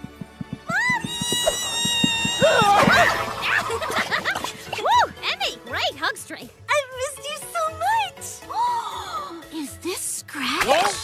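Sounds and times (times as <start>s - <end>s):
background music with low taps: 0.0s - 8.8s.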